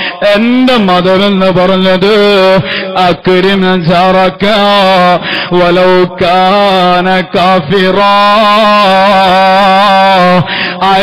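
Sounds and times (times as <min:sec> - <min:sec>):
man chanting: 0:00.0 - 0:11.0.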